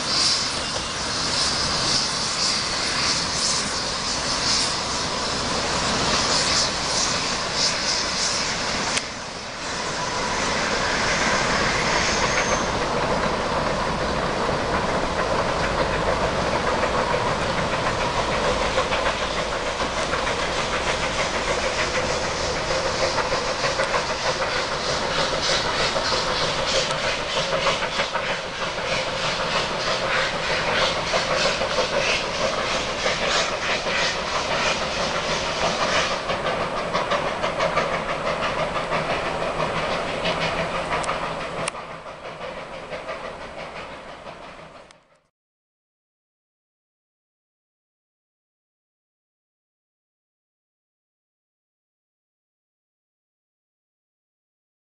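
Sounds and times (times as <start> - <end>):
steam hissing: 0.0 - 44.9
train carriages rolling: 0.0 - 45.0
steam locomotive exhaust beats: 0.0 - 45.3.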